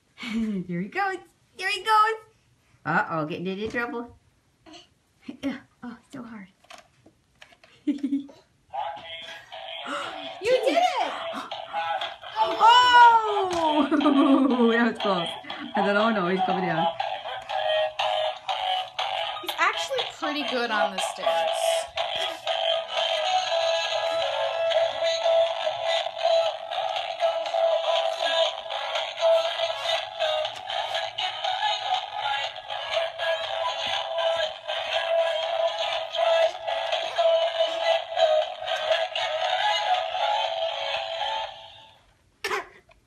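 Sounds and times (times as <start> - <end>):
toy synthesized voice singing: 15.3 - 41.7.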